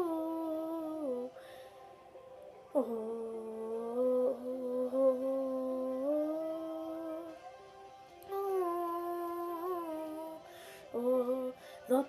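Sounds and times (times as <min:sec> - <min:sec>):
woman humming: 0:00.0 - 0:01.3, 0:02.8 - 0:07.3, 0:08.3 - 0:12.0.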